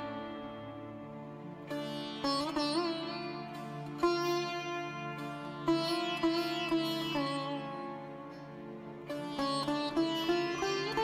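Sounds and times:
plucked string melody over drone: 0:00.0 - 0:11.0.

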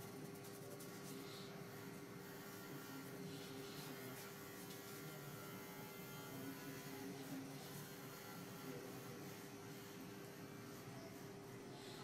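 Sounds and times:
fingers rubbing through hair: 0:00.0 - 0:01.5
steady electrical hum: 0:00.0 - 0:12.0.

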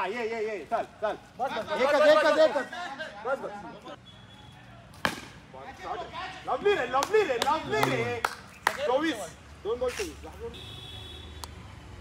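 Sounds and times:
cricket bat striking ball: 0:05.0 - 0:05.4.

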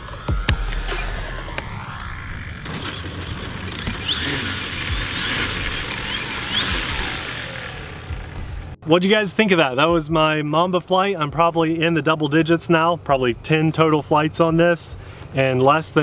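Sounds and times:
electric motor whine of rc plane: 0:00.0 - 0:08.8
electronic music with drum beat: 0:00.0 - 0:08.8, 0:09.9 - 0:10.4.

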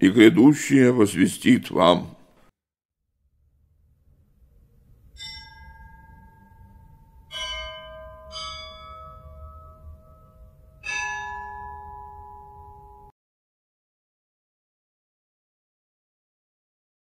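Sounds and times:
low rumble: 0:03.2 - 0:10.8
bells ringing: 0:05.2 - 0:13.1.

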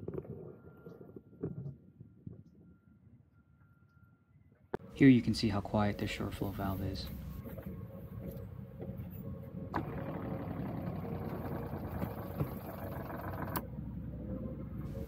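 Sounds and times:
water pump humming: 0:09.8 - 0:13.6.

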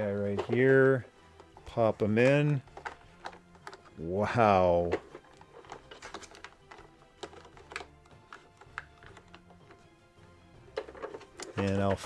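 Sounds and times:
faint background music: 0:00.0 - 0:12.0
plastic toy clicks and taps: 0:04.9 - 0:09.8.

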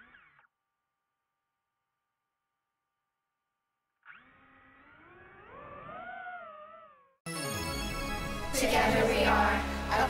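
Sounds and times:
drone motors whining: 0:04.0 - 0:07.1.

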